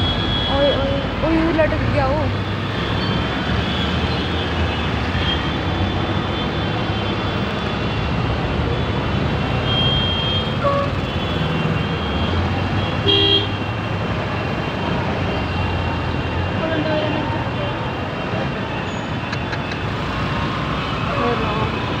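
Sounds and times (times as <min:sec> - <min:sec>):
vehicle engines running: 0:00.0 - 0:09.6, 0:13.8 - 0:22.0
car horn honking: 0:09.6 - 0:13.7.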